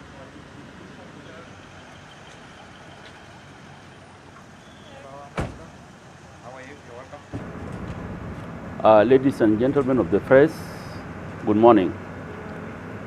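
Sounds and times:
vehicle engine noise: 0.0 - 13.0
car door shutting: 5.4 - 5.7.

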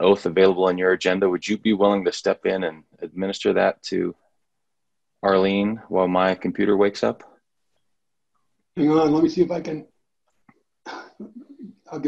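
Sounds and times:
person speaking: 8.7 - 10.0, 10.9 - 12.0.

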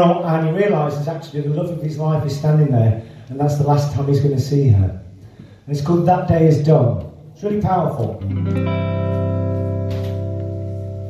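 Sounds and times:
guitar chord ringing: 8.2 - 11.0.

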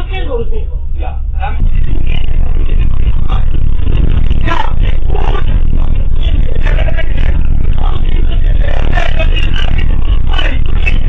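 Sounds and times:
bus engine rumble: 0.0 - 11.0
muffled indistinct sounds: 0.0 - 11.0.

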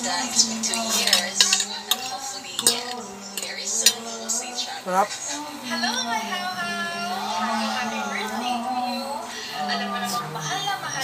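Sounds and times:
cutlery clinking on ceramic plate: 0.6 - 4.4.

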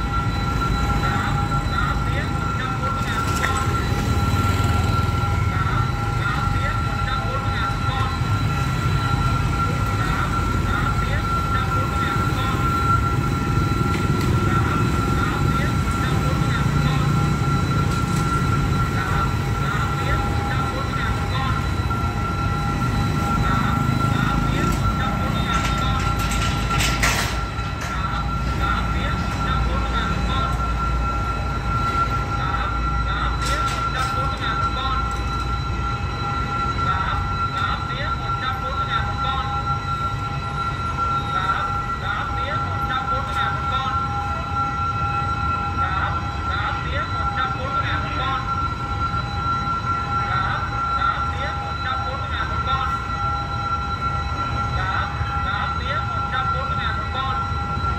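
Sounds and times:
level crossing two-note alarm: 0.0 - 57.9
motorbike engines passing: 3.0 - 6.7
crossing barrier metallic clatter: 13.8 - 30.8, 33.3 - 35.6.

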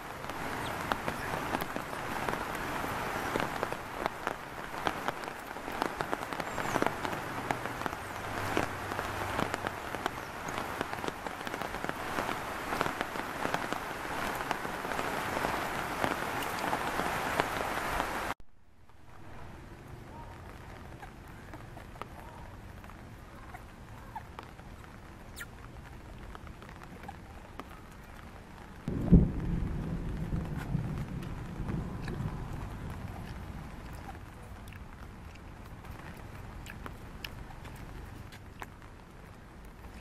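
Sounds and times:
steady rain: 0.0 - 40.0.

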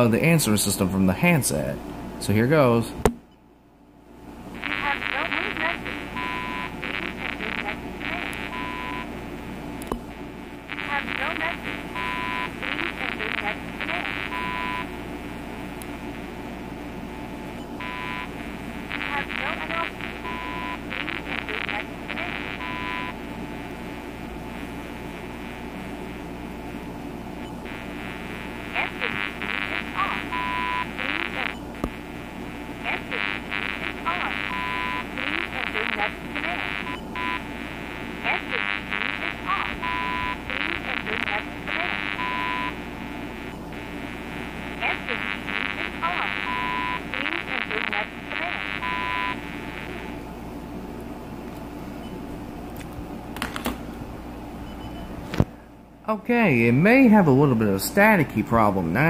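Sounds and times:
static hiss with crackling: 4.4 - 51.1.

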